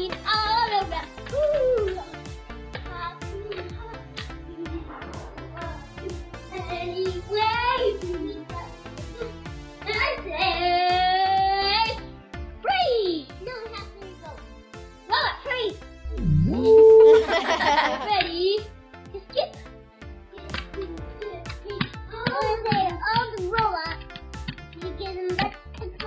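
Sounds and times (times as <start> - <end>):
children's music with beat: 0.0 - 26.0
child singing: 21.2 - 24.0, 24.8 - 26.0.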